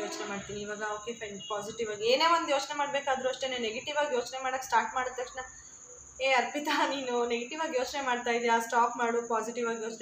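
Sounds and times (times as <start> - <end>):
woman talking: 0.0 - 5.6, 6.2 - 10.0
faint high-pitched whine: 0.0 - 10.0.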